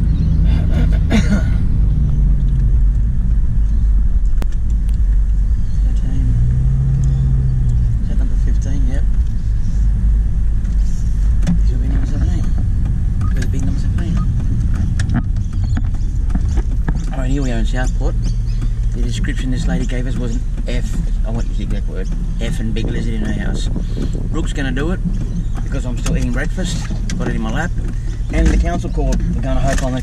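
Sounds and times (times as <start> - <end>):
car engine and road rumble: 0.0 - 30.0.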